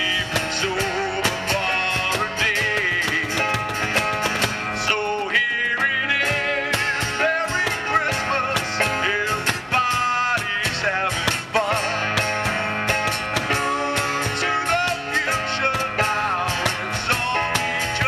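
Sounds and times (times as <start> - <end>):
acoustic guitars: 0.0 - 18.0
cajon beat: 0.0 - 18.0
man singing: 0.0 - 18.0.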